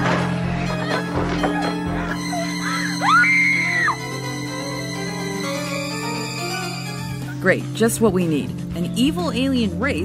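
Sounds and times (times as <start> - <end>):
low music: 0.0 - 10.0
high scream: 2.5 - 4.0.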